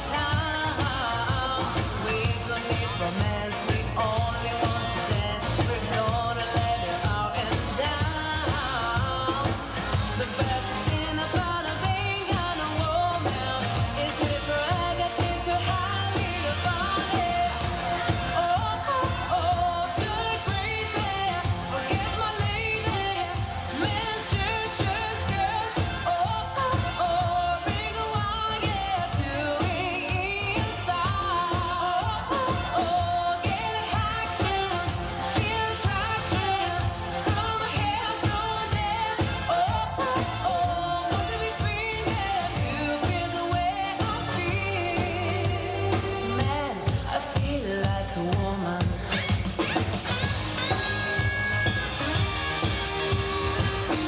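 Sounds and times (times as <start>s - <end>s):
woman singing into a microphone: 0.0s - 51.3s
live dance band playing pop: 0.0s - 54.0s.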